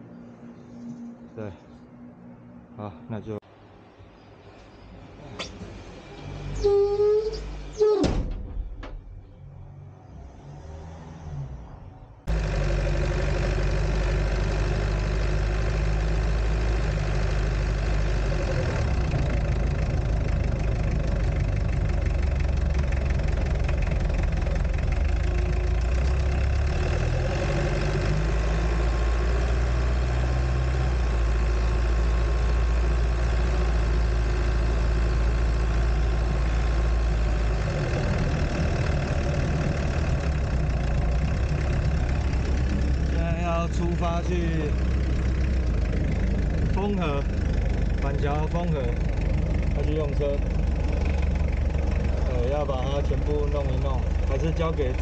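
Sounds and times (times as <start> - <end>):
van engine droning while driving: 5.1 - 55.0.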